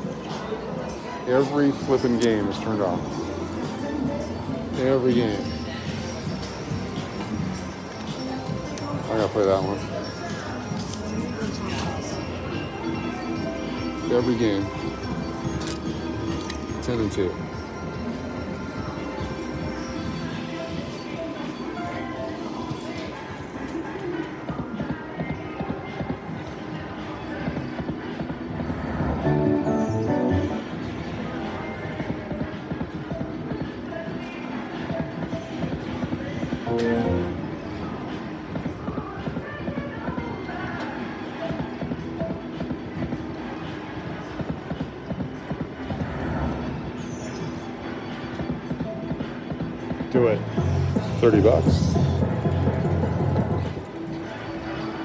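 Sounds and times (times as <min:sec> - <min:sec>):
casino background noise: 0:00.0 - 0:55.0
slot machine reel music: 0:12.2 - 0:22.4, 0:29.2 - 0:31.2, 0:36.6 - 0:37.5
slot machine jingles: 0:29.2 - 0:30.8
electronic chimes: 0:29.3 - 0:30.9.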